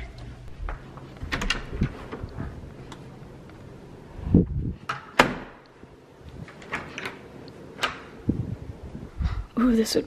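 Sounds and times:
door handle and latch clicking: 6.5 - 8.1.

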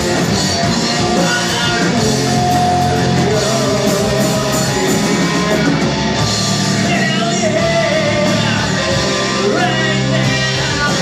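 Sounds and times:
bass guitar: 0.0 - 11.0
drums: 0.0 - 11.0
electric guitars: 0.0 - 11.0
person singing: 0.6 - 5.9, 6.7 - 11.0.

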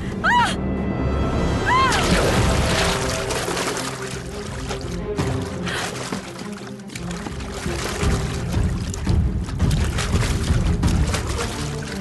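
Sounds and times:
orchestral music: 0.0 - 12.0
water splashing and churning: 1.6 - 12.0.

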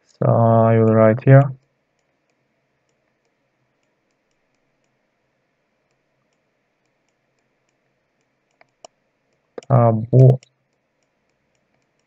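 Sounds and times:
faint small clicks: 0.8 - 5.1, 5.8 - 12.0.

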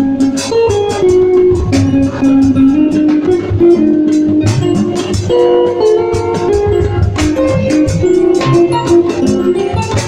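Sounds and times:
bass line: 0.0 - 10.0
guitar melody: 0.0 - 10.0
steady drum beat: 0.0 - 10.0.

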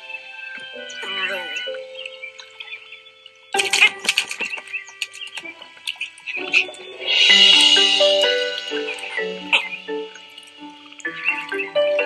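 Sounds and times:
faint high chirps: 0.0 - 12.0
held music notes: 0.0 - 12.0
bird wings flapping and clattering: 3.6 - 6.6.

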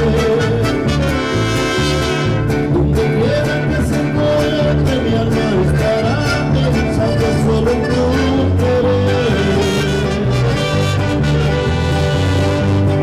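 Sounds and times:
mariachi band playing: 0.0 - 13.0.

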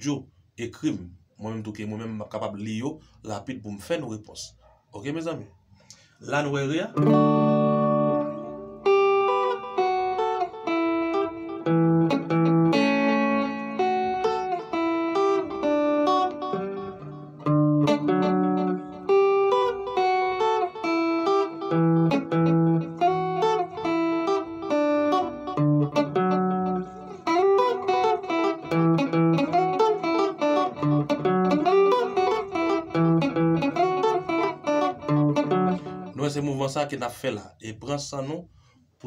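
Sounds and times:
clean electric guitar chords: 6.9 - 36.3.

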